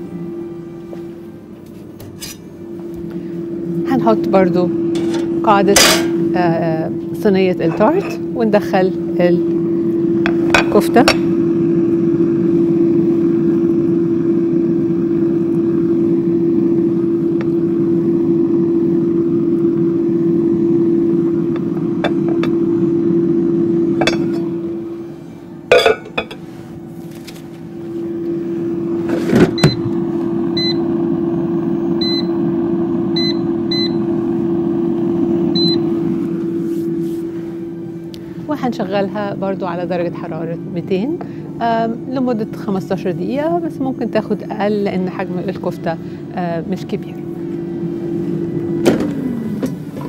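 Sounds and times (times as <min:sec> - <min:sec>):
air fryer fan hum: 0:00.0 - 0:50.0.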